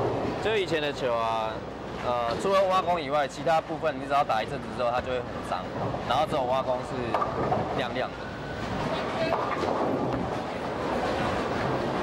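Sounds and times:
bowling balls rolling: 5.7 - 12.0.

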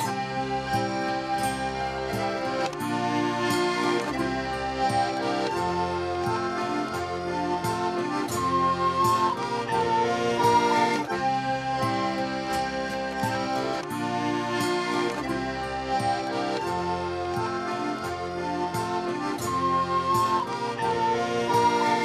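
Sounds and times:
instrumental folk music: 0.0 - 22.0.

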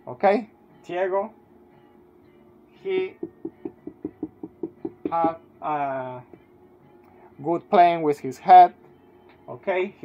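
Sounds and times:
marker tapping on whiteboard: 3.2 - 5.4.

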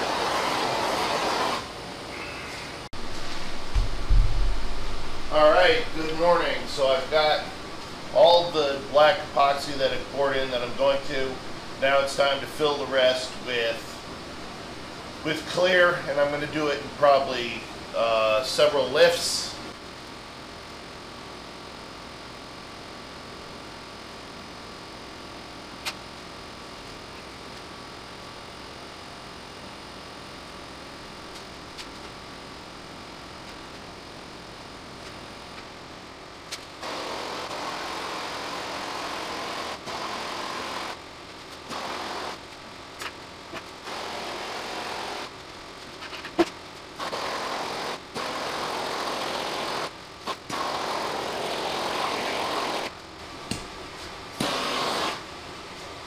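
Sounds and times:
low background hum: 1.6 - 56.0
gas torch bursts: 54.4 - 55.2.

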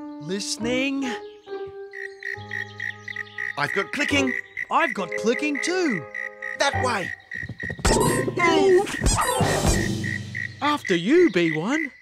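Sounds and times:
playful cartoon music: 0.0 - 11.8
cartoon cricket clicking: 2.0 - 8.1.

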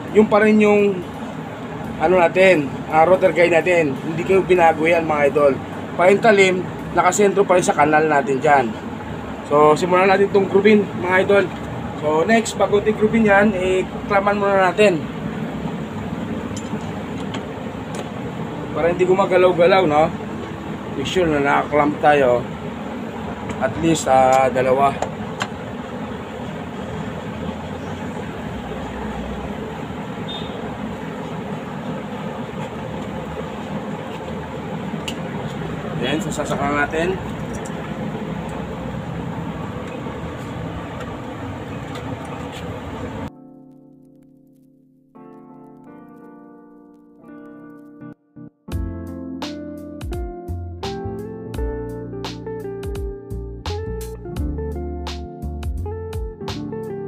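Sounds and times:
soft piano music: 0.0 - 57.0.

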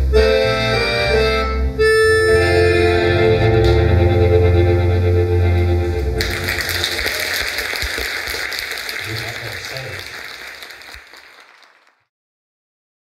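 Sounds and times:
accordion and guitar chord: 0.0 - 6.5
audience applauding: 6.1 - 12.1.

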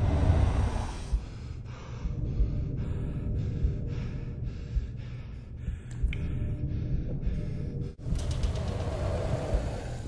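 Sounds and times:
low rumbling background music: 0.0 - 10.0.

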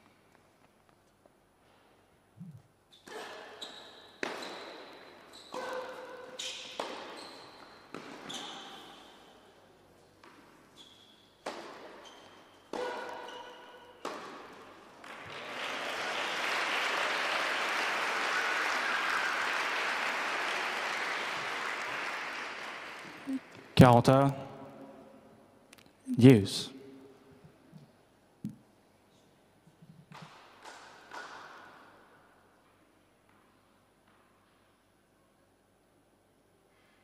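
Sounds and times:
tennis racket strikes: 5.5 - 7.2, 11.4 - 12.0, 12.7 - 14.6
tennis ball bounces: 6.8 - 7.2, 11.4 - 12.0, 12.7 - 15.2, 30.1 - 31.8
crowd applause: 15.0 - 23.6.

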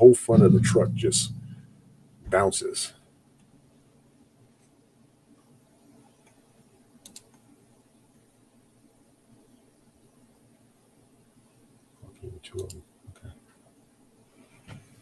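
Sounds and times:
faint clicks: 7.0 - 7.5, 12.6 - 13.6.

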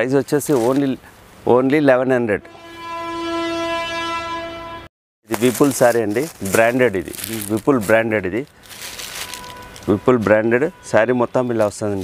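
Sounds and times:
steady horn-like tone: 1.9 - 6.8, 9.2 - 11.6.

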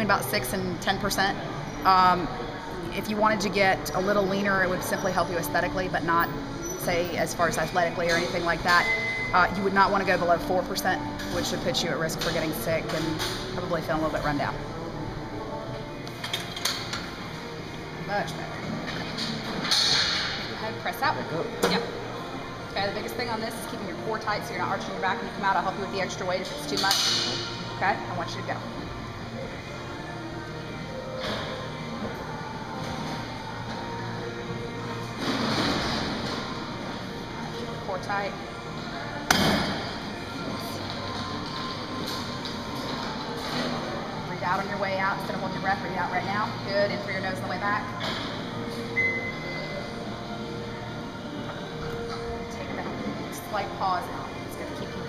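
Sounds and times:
faint background music: 0.0 - 55.0.

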